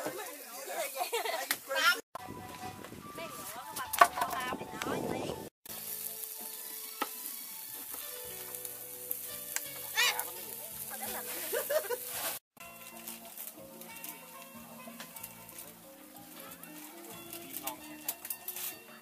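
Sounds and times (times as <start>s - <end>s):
meat sizzling on grill: 5.6s - 19.0s.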